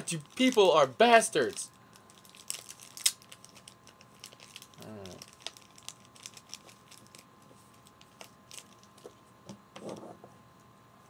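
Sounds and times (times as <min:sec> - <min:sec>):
plastic bag crinkling: 0:00.0 - 0:09.2.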